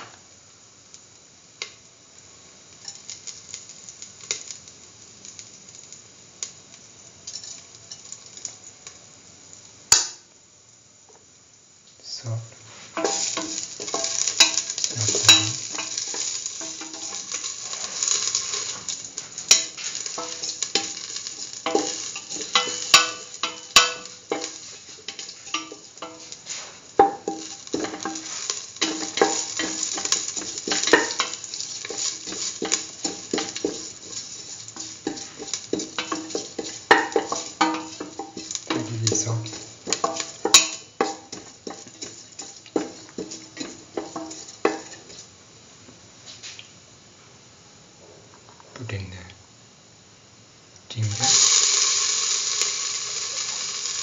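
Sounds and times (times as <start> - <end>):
seeds sizzling in hot oil: 0.0 - 54.0
scrapes and taps on metal pan: 21.7 - 45.1.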